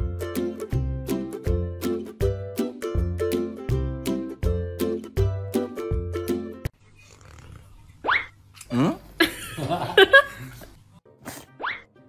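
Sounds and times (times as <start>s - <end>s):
music: 0.0s - 6.7s, 11.0s - 12.0s.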